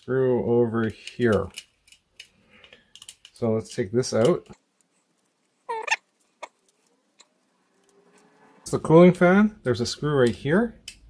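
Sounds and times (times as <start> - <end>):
small plastic clicks: 0.9 - 3.4.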